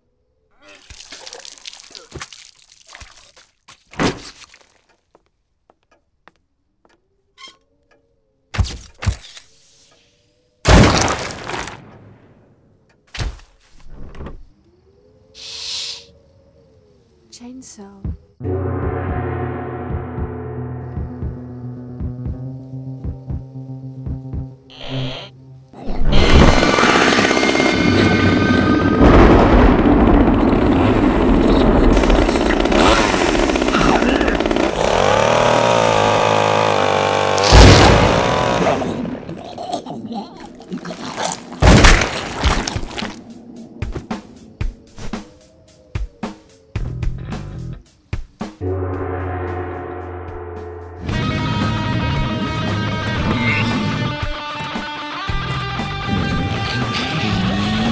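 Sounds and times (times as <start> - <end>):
chainsaw running: 26.5 - 28.4, 30.3 - 39.2
loud crash sound effect: 37.4 - 38.5.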